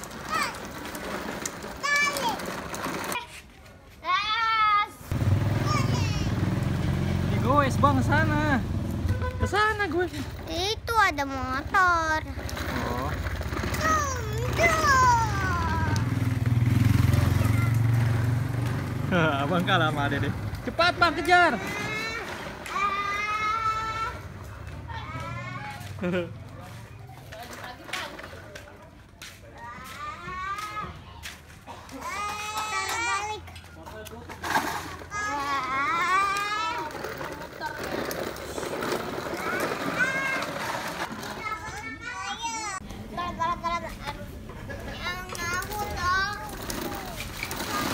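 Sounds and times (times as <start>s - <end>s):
children shouting and squealing: 4.0s - 6.5s, 13.6s - 16.2s, 17.1s - 18.2s, 21.4s - 26.0s, 29.4s - 33.9s, 35.0s - 37.1s, 39.2s - 47.9s
motorcycle engine rumbling: 5.1s - 28.6s.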